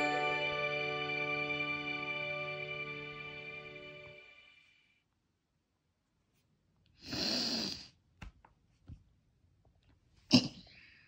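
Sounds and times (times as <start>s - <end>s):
person mock snoring: 7.0s - 7.9s.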